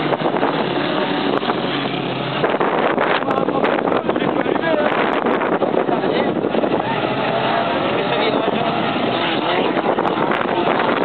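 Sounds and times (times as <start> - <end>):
race car engines revving: 0.0 - 11.0.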